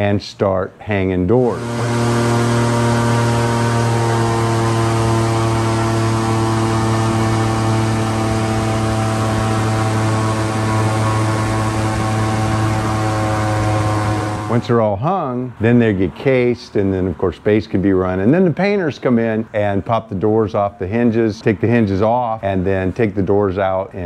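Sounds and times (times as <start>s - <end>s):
airboat engine and propeller drone: 1.5s - 15.4s.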